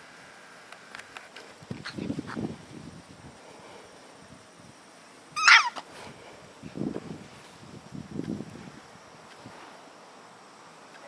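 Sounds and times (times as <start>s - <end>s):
puppy yelping: 5.4s - 5.8s.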